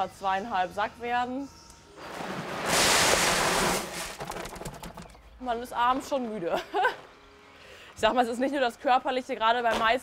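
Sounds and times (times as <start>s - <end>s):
paper sack rustling: 2.0s - 5.1s
seed kernels pouring into hopper: 2.1s - 4.6s.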